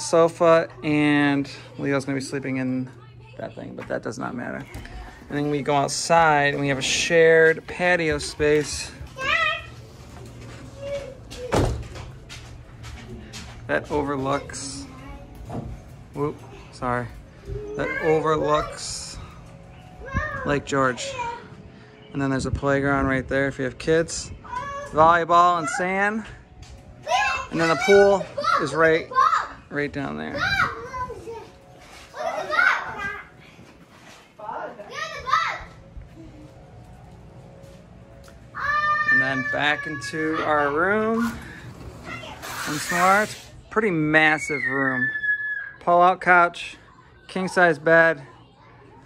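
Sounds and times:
young child's high voice: 9.1s - 9.8s, 10.7s - 11.6s, 20.0s - 20.5s, 24.4s - 25.0s, 27.0s - 29.6s, 30.4s - 33.4s, 34.5s - 35.8s, 38.6s - 40.5s, 42.0s - 42.8s.

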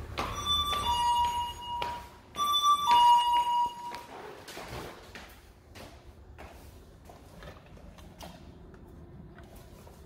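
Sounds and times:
high heels clicking on tiles: 0.0s - 10.0s.

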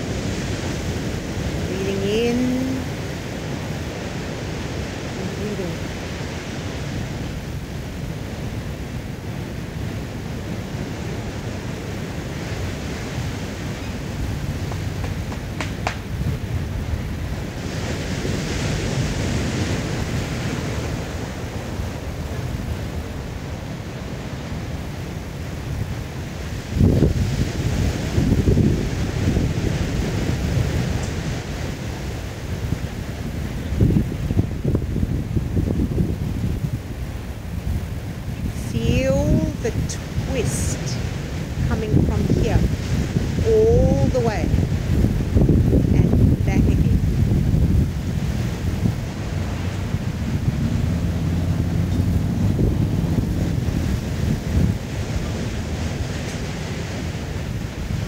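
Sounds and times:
surf rushing: 0.0s - 58.0s
wind buffeting microphone: 0.0s - 58.0s.

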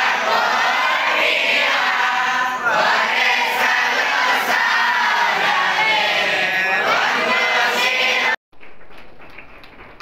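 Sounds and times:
voices chanting together: 0.0s - 8.4s.

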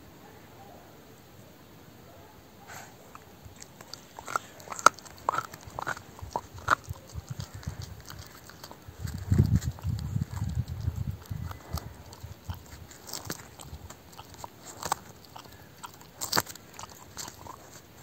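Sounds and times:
dog chewing a bone: 3.1s - 18.0s.

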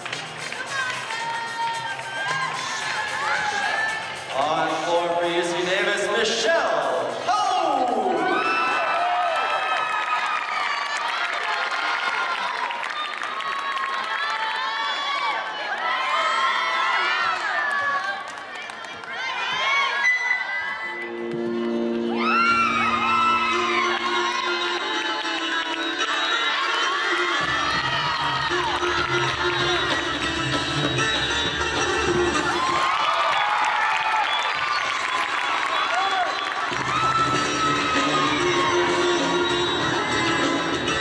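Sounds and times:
crowd cheering: 0.0s - 5.1s, 7.3s - 31.6s, 32.2s - 41.0s
floor exercise music: 0.0s - 8.2s, 20.9s - 33.0s, 36.5s - 41.0s
high-pitched shouts: 35.8s - 40.6s.

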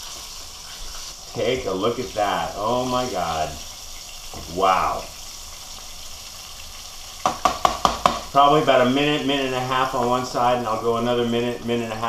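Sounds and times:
fish fillets sizzling in oil: 0.0s - 12.0s.

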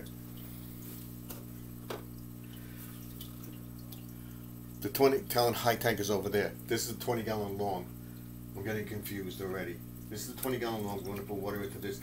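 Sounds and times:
aquarium equipment hum: 0.0s - 12.0s
water drips: 0.0s - 12.0s.

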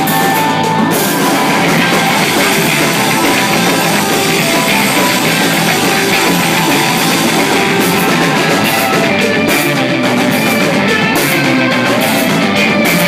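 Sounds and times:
drum kit: 0.0s - 13.0s
electric guitars: 0.0s - 13.0s.

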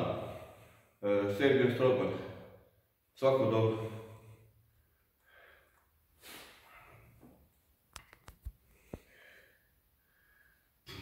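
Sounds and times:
faint breathing: 3.7s - 7.2s, 8.6s - 10.9s.

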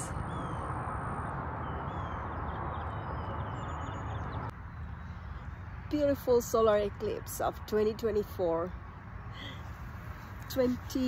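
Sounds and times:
small birds chirping: 1.6s - 6.9s.

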